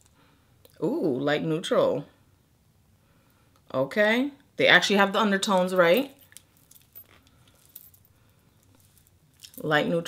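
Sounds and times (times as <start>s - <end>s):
faint clicks and rustles of handling: 5.5s - 9.8s.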